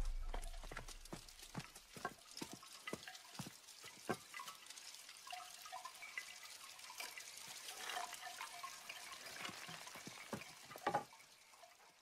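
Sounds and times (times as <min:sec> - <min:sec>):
deep boom rumble: 0:00.0 - 0:00.8.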